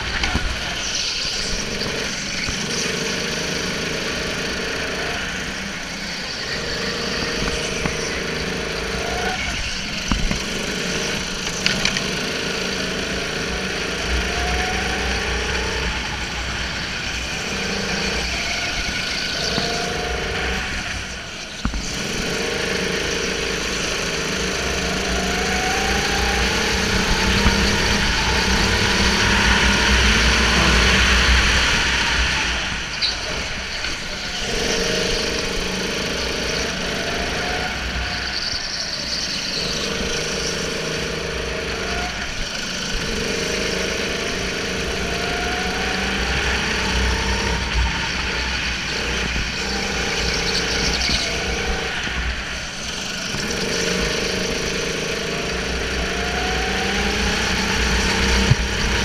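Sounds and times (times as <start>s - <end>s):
kart engine at racing speed: 0.0s - 59.0s
other kart engines: 0.0s - 59.0s.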